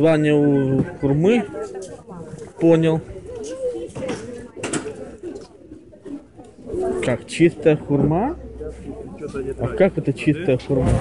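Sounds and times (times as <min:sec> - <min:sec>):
indistinct crowd voices: 0:00.0 - 0:11.0.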